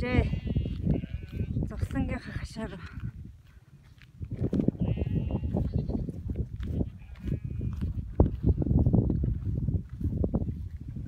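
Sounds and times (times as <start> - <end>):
goats and sheep bleating: 0.0 - 2.7, 4.8 - 8.0.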